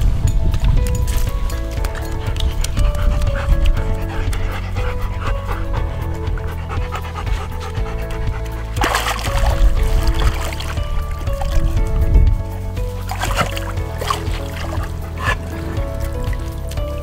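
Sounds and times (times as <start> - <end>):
background music with held notes: 0.0 - 17.0
dog panting: 1.7 - 11.9, 12.8 - 17.0.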